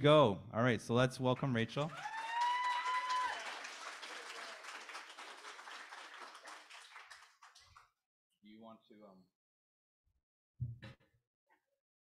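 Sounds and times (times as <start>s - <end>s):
congregation applauding: 1.8s - 7.9s.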